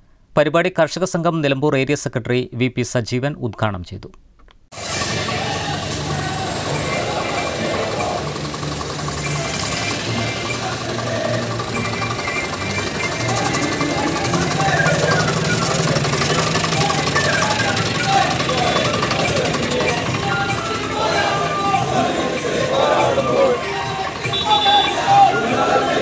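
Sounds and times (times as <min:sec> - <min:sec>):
street procession noise: 0:04.8 - 0:26.0
tractor diesel engine running: 0:04.8 - 0:26.0
voices shouting: 0:04.8 - 0:26.0.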